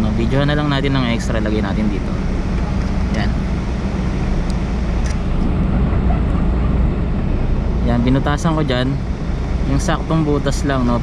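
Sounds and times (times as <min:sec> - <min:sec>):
low vehicle rumble: 0:00.0 - 0:11.0.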